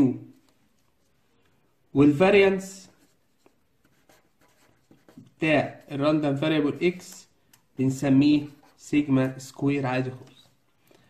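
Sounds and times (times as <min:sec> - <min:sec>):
marker scratching on paper: 0:02.4 - 0:07.3, 0:08.0 - 0:09.5.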